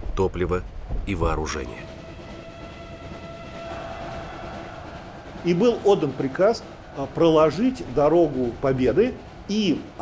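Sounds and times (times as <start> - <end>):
train rumble: 0.0 - 10.0.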